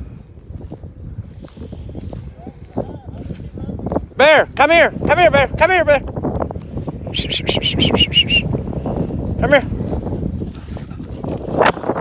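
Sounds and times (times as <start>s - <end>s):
footsteps through dry grass: 0.0s - 5.1s, 8.4s - 12.0s
wind rumble on microphone: 0.0s - 12.0s.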